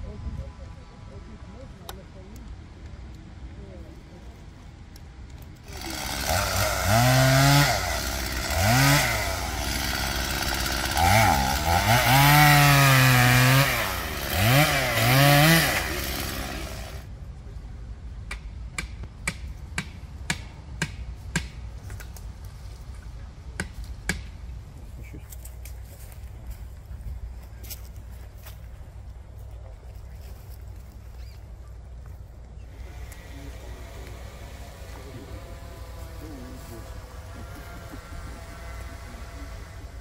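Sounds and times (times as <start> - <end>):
chainsaw revving while cutting: 5.7 - 17.0, 32.7 - 40.0.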